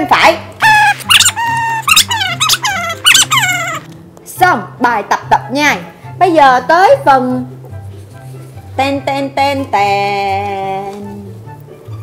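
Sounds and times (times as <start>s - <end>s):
squeaky toy squeaks: 0.6s - 3.9s.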